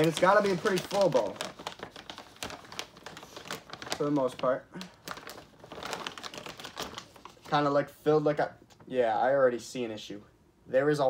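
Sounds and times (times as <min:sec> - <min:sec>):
plastic bag crinkling: 0:00.0 - 0:07.7.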